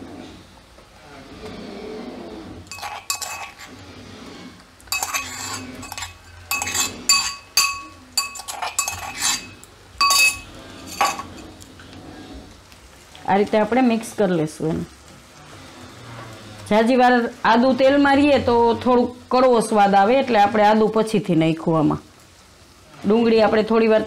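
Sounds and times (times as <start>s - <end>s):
oil sizzling: 2.5s - 24.0s
spoon clinking against bowl: 2.7s - 3.6s, 4.9s - 11.3s.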